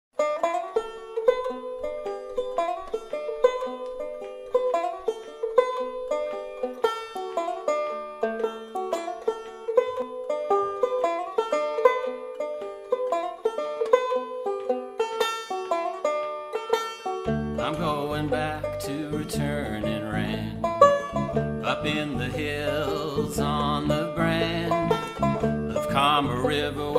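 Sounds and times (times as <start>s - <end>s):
plucked string instrument picking: 0.2s - 26.9s.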